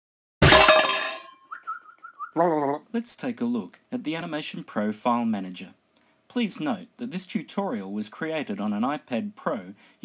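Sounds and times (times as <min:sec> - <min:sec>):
short warbling whistle-like tone: 0:01.4 - 0:02.4.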